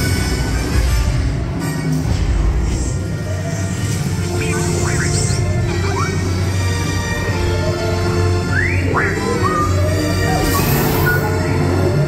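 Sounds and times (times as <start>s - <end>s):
dramatic soundtrack music: 0.0s - 12.0s.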